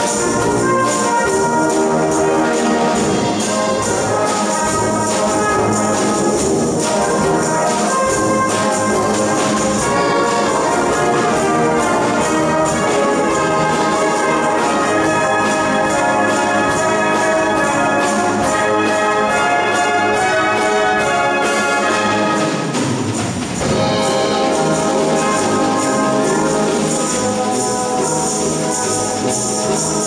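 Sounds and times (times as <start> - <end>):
brass band playing jazz: 0.0 - 30.0.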